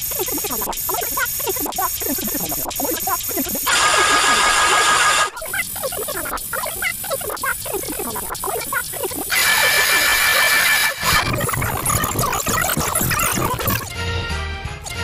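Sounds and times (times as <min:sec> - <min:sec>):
distorted hissing blasts: 0:00.0 - 0:13.8
squealing sped-up sounds: 0:00.0 - 0:13.9.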